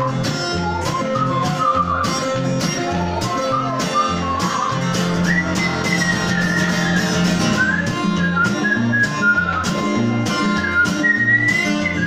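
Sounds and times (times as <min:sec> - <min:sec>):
acoustic guitar strumming: 0:00.0 - 0:12.0
whistled melody: 0:00.0 - 0:12.0.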